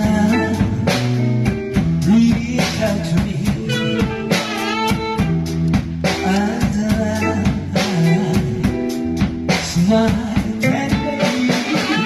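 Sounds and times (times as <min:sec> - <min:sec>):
bass: 0:00.0 - 0:12.0
drums: 0:00.0 - 0:12.0
guitar lead with vibrato: 0:03.4 - 0:09.4, 0:10.6 - 0:12.0.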